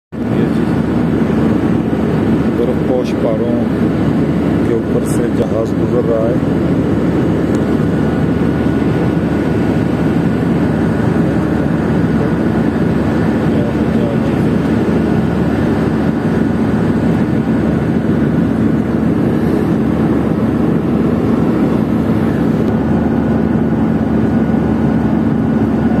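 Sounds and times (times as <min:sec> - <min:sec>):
jet engine and airflow rush: 0:00.1 - 0:26.0.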